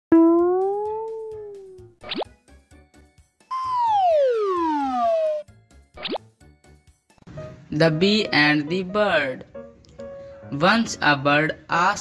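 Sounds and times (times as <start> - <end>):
pitched tone bending up: 0.1 - 2.0, 3.5 - 5.4
downward-gliding whistle: 3.5 - 5.4
upward whistle-like sweep: 3.5 - 5.4.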